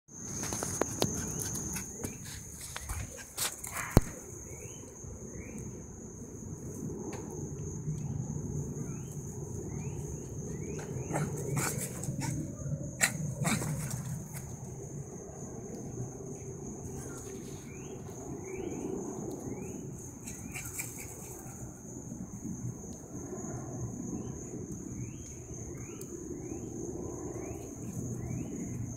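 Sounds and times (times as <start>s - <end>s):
small dog yapping: 11.1s - 14.0s.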